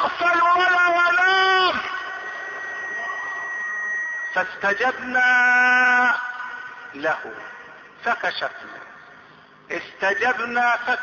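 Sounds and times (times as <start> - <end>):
high constant whine: 0.0 - 11.0.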